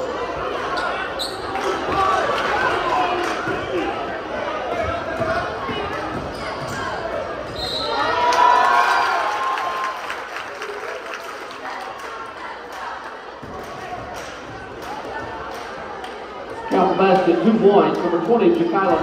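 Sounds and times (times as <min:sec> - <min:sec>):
crowd voices: 0:00.0 - 0:19.0.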